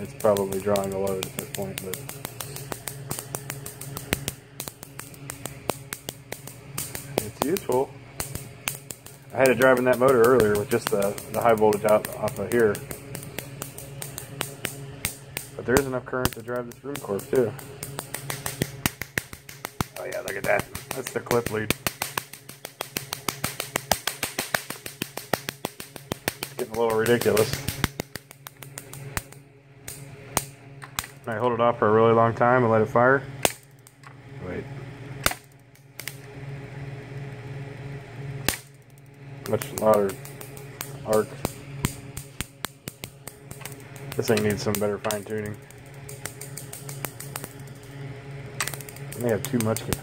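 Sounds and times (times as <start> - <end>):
induction coil snapping clicks: 0.0 - 31.7, 33.4 - 34.3, 35.0 - 36.4, 38.4 - 50.0
low electrical hum: 0.0 - 50.0.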